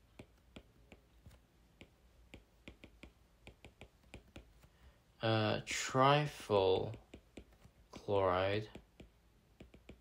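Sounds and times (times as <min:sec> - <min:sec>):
stylus tapping on tablet screen: 0:00.0 - 0:04.9, 0:06.7 - 0:10.0.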